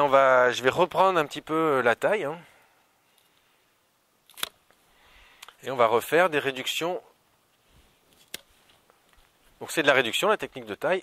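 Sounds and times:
pruning shears snipping: 4.3 - 4.7, 8.2 - 8.5.

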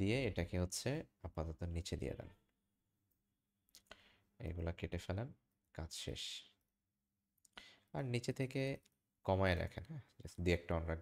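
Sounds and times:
man speaking: 0.0 - 2.4, 4.4 - 6.6, 8.0 - 11.0.

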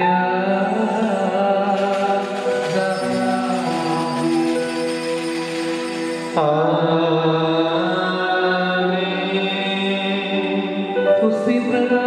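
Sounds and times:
liturgical chant singing: 0.0 - 12.0.

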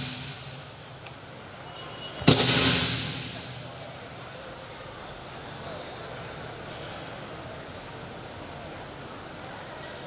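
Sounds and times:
busy hall background noise: 0.0 - 10.0.

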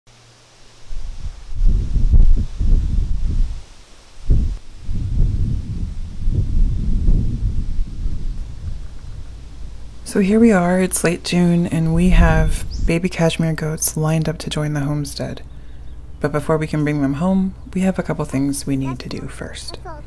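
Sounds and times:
wind gusting on microphone: 0.8 - 19.8.

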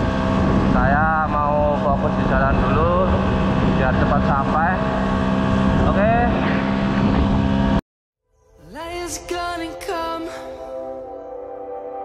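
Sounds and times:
scooter engine running: 0.0 - 7.8.

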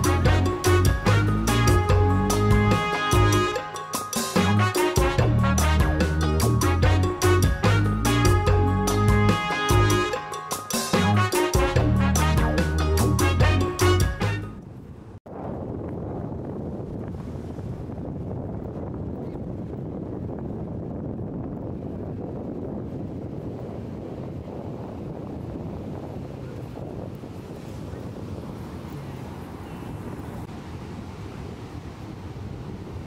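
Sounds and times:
wind on microphone: 14.6 - 33.0
ocean surf breaking on beach: 22.8 - 33.0.

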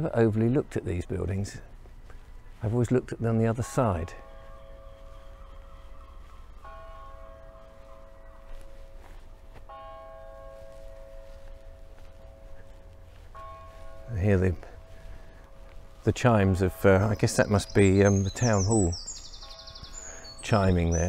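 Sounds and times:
tower bell striking: 3.2 - 21.0.

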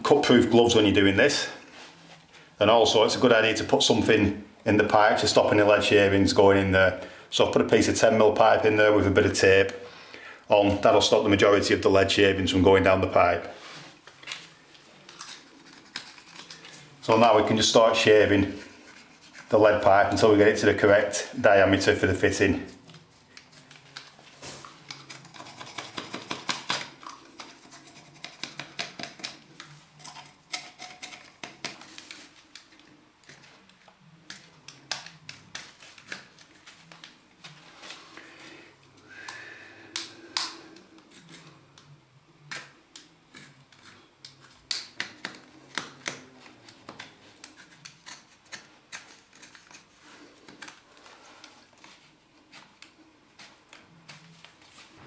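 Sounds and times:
knife scraping lead pipe: 15.1 - 16.8, 18.4 - 19.6, 24.9 - 29.4, 47.4 - 50.0.

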